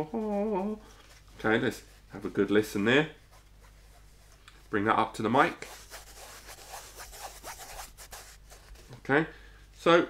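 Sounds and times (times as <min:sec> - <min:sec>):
fingers scratching woven fabric: 0:05.5 - 0:08.9.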